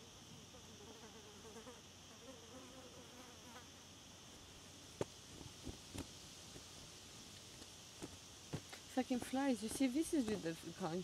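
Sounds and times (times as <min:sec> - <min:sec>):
fly buzzing: 0:00.5 - 0:03.9.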